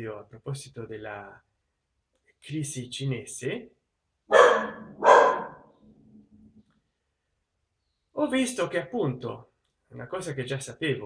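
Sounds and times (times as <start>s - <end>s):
dog barking: 4.3s - 5.7s.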